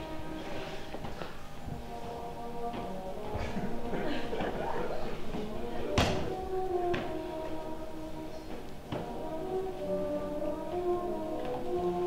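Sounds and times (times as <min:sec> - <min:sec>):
music with held tones: 0:00.0 - 0:12.0.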